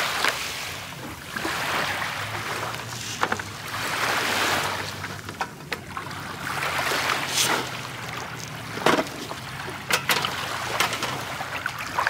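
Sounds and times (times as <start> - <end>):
waves washing onto pebbles: 0.0 - 12.0.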